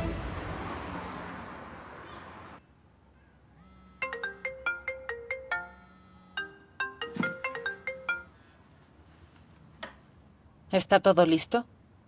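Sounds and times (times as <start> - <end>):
phone ringtone melody: 3.7 - 8.5.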